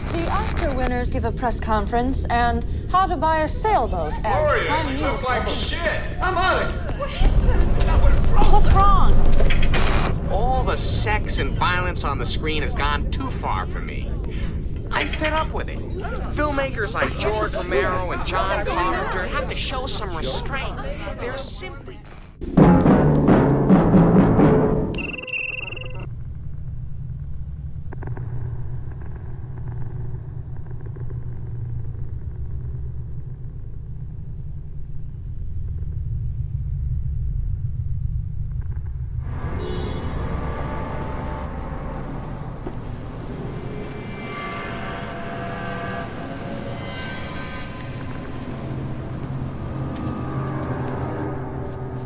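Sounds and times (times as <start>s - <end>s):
deep soundtrack rumble: 0.0s - 52.0s
bright ringing tones: 25.0s - 26.1s.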